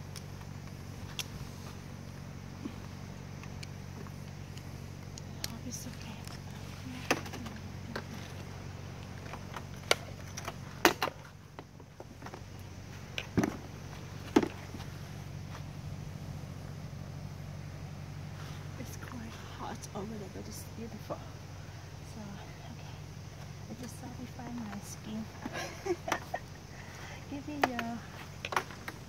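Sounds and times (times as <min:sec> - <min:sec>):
steady low hum: 0:00.0 - 0:29.0
clicks and knocks on scooter: 0:27.6 - 0:29.0.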